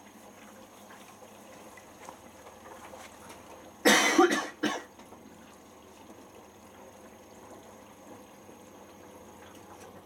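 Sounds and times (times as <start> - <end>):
washing machine sloshing: 0.0 - 10.0
person coughing: 3.9 - 4.9.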